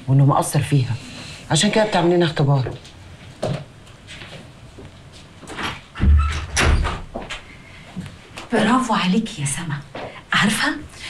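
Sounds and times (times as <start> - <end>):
door thudding shut: 6.0 - 7.3.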